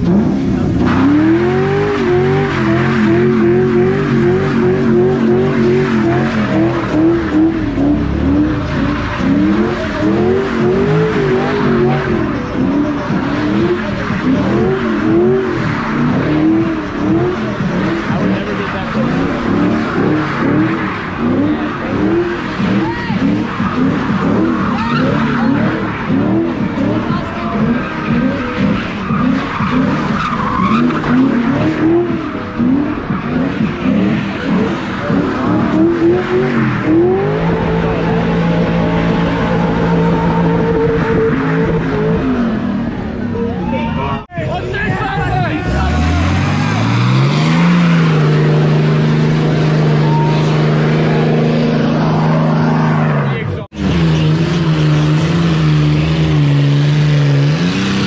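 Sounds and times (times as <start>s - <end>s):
car engine revving: 0.0s - 58.0s
tyres squealing: 0.8s - 44.5s.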